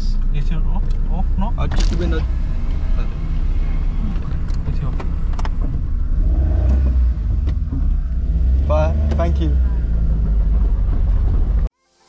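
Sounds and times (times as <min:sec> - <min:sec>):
car rumble from inside cabin: 0:00.0 - 0:11.7.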